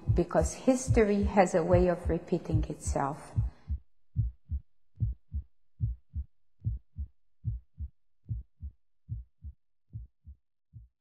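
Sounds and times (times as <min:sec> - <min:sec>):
heartbeat thumps: 0:00.0 - 0:11.0.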